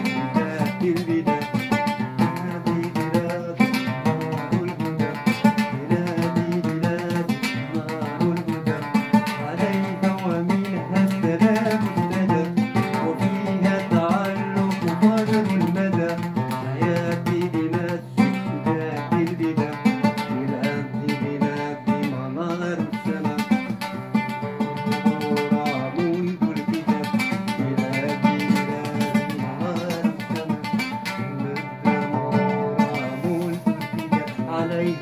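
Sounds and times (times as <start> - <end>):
oud quick plucked notes: 0.0 - 35.0.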